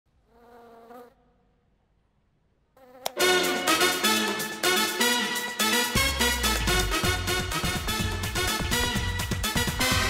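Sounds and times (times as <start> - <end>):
electronic dance music: 3.2 - 10.0.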